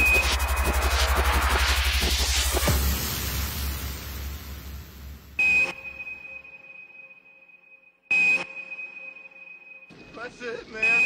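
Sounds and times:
electronic sonar-like pings: 0.0 - 0.8, 5.4 - 11.0
drum and bass bass: 0.0 - 5.4.

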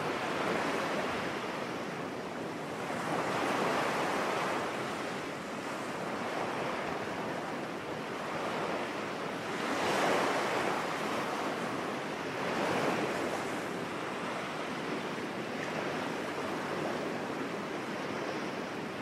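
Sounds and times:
sea waves washing on beach: 0.0 - 19.0
wind: 0.0 - 19.0.

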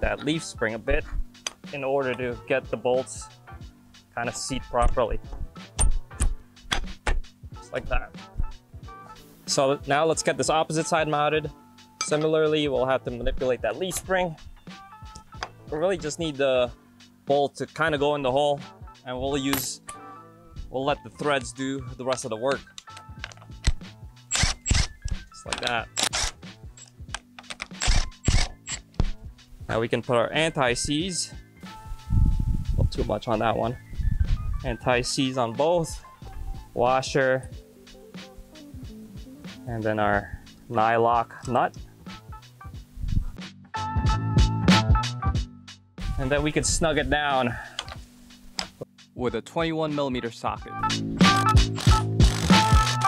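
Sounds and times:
background music with low drone: 0.0 - 53.0
metallic clicks of shackle bolt: 1.4 - 2.2, 5.7 - 7.2, 19.5 - 20.0, 22.1 - 29.0, 47.8 - 48.0.

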